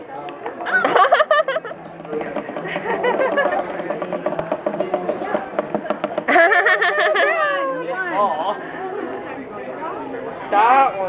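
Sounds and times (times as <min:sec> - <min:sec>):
babble of voices: 0:00.4 - 0:10.7.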